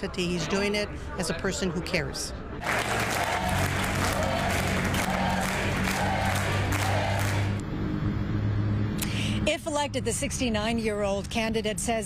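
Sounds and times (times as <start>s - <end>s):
audience applauding: 2.6s - 7.6s.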